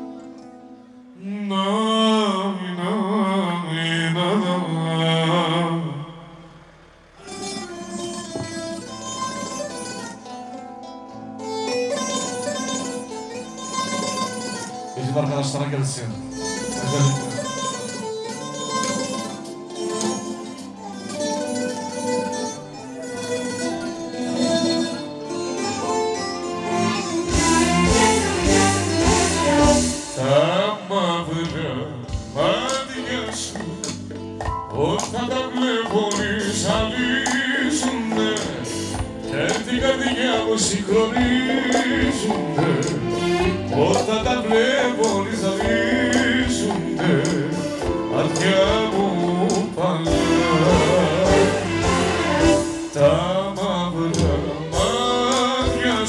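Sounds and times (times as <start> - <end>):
plucked-string melody: 0.0 - 1.2, 6.3 - 30.7, 32.1 - 56.0
person singing: 1.2 - 6.4, 16.3 - 19.3, 26.6 - 34.0, 34.6 - 56.0
steady beat with bass drum: 27.0 - 30.3, 36.1 - 56.0.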